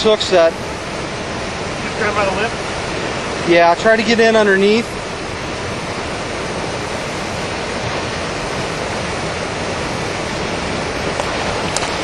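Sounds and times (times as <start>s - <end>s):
flowing stream water: 0.0s - 12.0s.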